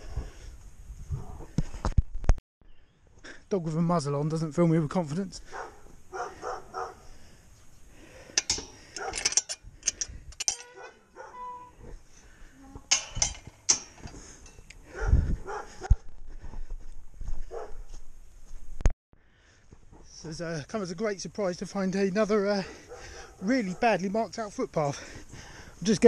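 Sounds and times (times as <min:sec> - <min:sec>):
muzzled dog barking: 0:05.4 - 0:07.1, 0:08.9 - 0:09.3, 0:10.7 - 0:11.6, 0:14.8 - 0:16.0, 0:17.4 - 0:17.9, 0:22.6 - 0:24.0.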